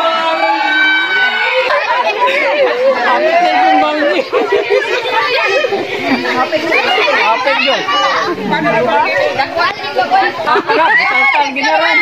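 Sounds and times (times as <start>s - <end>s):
adults and children talking: 0.0s - 12.0s
people laughing: 4.0s - 11.2s.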